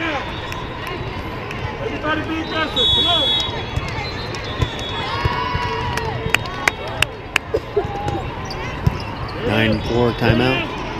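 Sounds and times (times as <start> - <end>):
crowd and player voices: 0.0 - 10.9.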